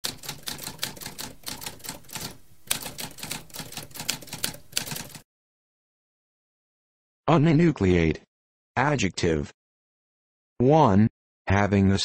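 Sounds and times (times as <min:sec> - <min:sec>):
typewriter keys clicking: 0:00.0 - 0:05.2.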